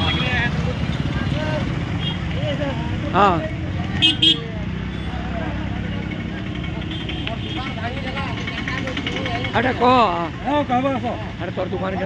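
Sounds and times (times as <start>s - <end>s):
faint crowd chatter: 0.0s - 12.0s
vehicle engine idling: 0.0s - 12.0s.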